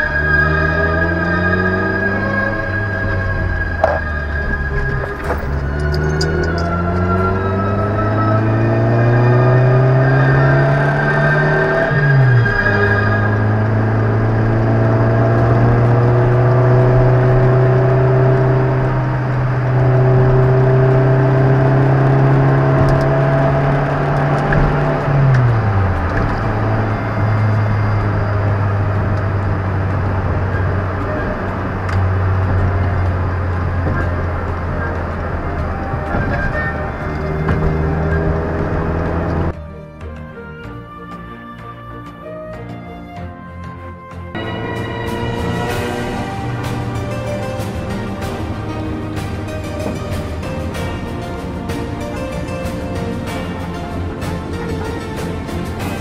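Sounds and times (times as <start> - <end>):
vehicle engine running loudly: 0.0 - 39.6, 44.0 - 56.0.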